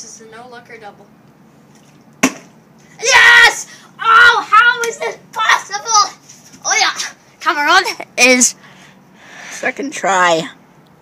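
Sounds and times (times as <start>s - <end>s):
plastic bottles landing on concrete: 2.2s - 2.5s.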